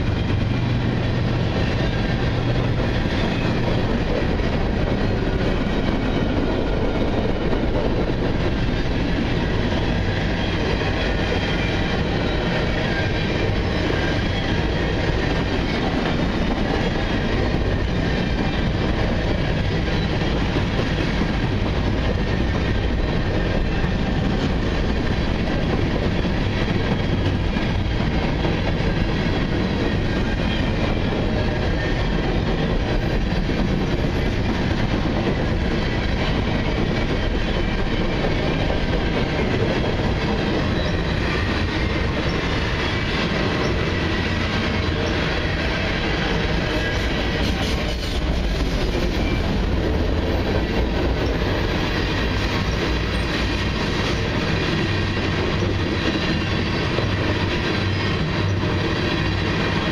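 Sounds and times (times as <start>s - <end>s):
freight train wheels rumbling on rails: 0.0s - 59.9s.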